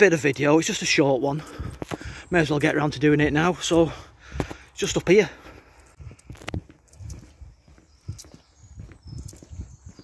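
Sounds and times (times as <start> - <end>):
footsteps on tarmac: 0.0 - 10.0.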